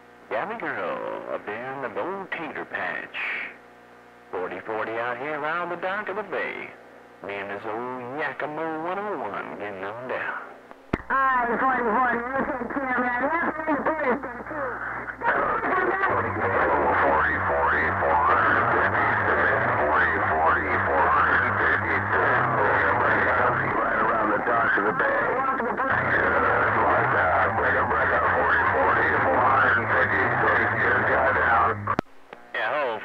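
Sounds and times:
radio hum: 0.0 - 33.0
distorted echoed radio voice: 0.4 - 3.6, 6.1 - 33.0.

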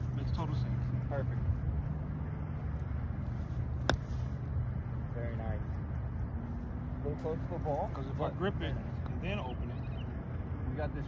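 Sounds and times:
golf club striking sand: 3.7 - 4.4.

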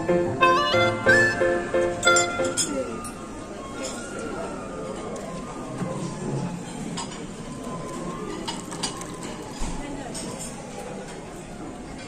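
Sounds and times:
murmur of diners' chatter: 0.0 - 12.0
crockery and cutlery clinking: 1.9 - 3.2.

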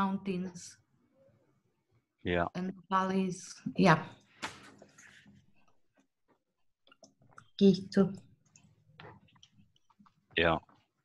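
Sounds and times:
person saying yeah: 2.3 - 2.5.

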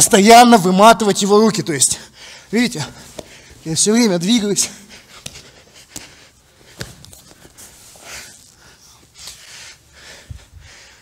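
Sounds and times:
people breathing: 2.0 - 3.6, 4.6 - 11.0.

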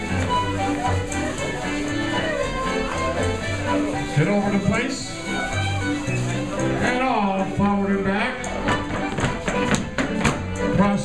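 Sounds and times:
voices in a hall: 0.0 - 10.0
fiddle tune with guitar and keyboard: 0.0 - 11.0
sharp taps: 8.4 - 10.7.

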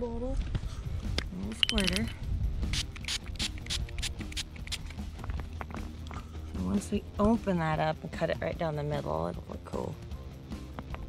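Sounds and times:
pump spray bottle spraying: 2.7 - 5.0.

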